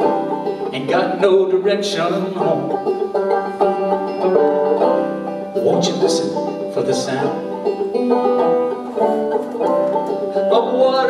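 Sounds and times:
banjo picking: 0:00.0 - 0:11.0
person singing: 0:00.7 - 0:02.9, 0:10.3 - 0:11.0.

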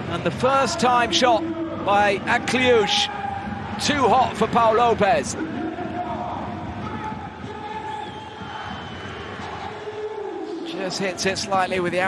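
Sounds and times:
crowd voices din: 0:00.0 - 0:12.0.

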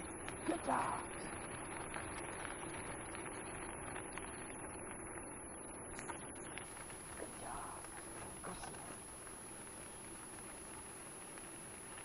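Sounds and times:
wheels rolling over gravel: 0:00.0 - 0:05.2, 0:06.0 - 0:12.0.

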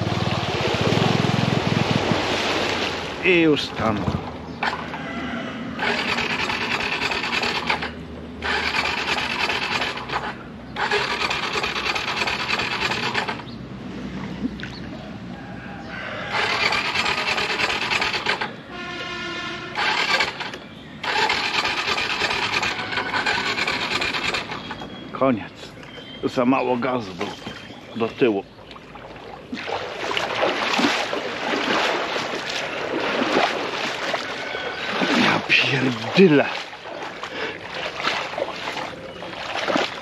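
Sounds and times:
scooter churning through water: 0:00.0 - 0:40.0.

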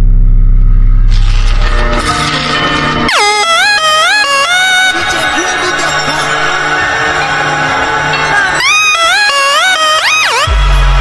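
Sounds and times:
bass: 0:00.0 - 0:11.0
air horn sample: 0:01.1 - 0:07.0, 0:08.6 - 0:11.0.

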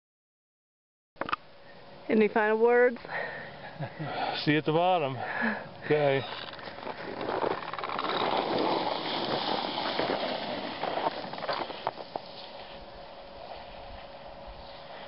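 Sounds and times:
skis scraping over snow: 0:06.6 - 0:15.0.

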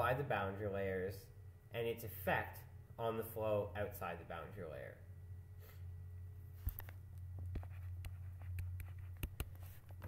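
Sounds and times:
steady low hum: 0:00.0 - 0:10.0
stylus scratching on a tablet: 0:07.6 - 0:10.0.

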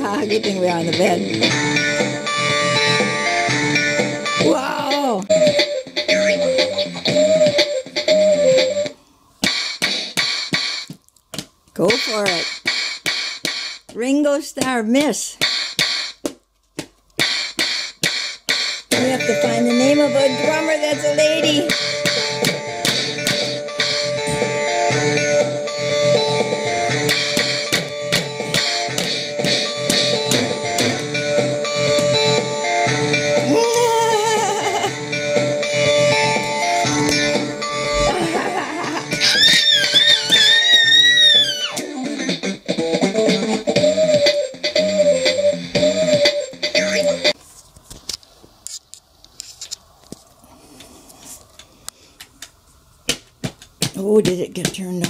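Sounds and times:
toy drum pad music: 0:00.0 - 0:11.0, 0:17.3 - 0:33.4, 0:39.0 - 0:41.6.

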